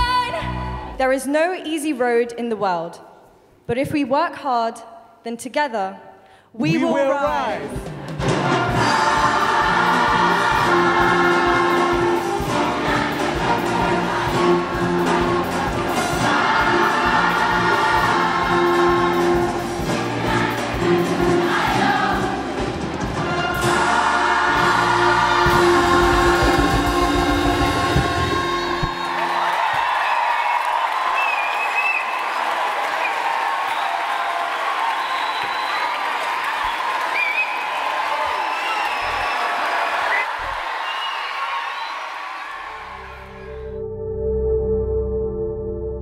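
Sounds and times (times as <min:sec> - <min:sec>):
orchestra playing: 0:06.6 - 0:29.5, 0:42.7 - 0:46.0
audience applauding and cheering: 0:07.0 - 0:22.3, 0:23.0 - 0:43.8
steady drum beat: 0:07.2 - 0:29.1
children's choir singing: 0:07.8 - 0:29.3.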